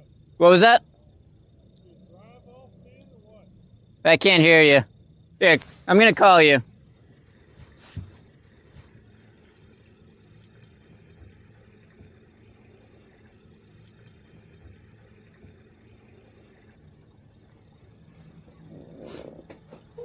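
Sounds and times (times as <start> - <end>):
low rumble: 0.0 - 4.1, 4.8 - 20.0
rustling: 6.8 - 10.0.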